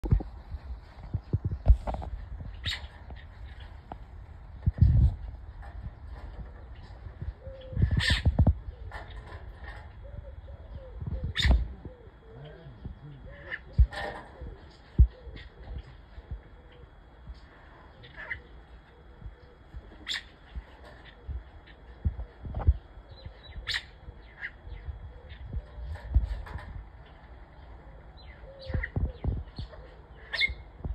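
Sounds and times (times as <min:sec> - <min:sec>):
birds chirping and calling: 0:00.8 - 0:30.9.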